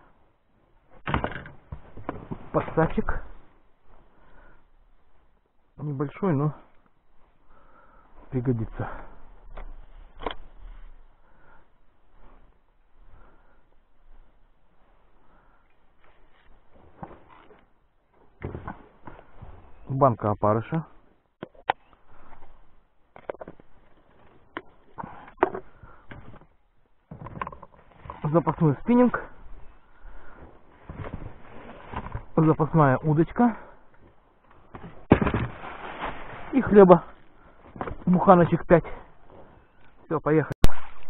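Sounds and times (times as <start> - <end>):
rustling handling noise: 33.8 - 40.0.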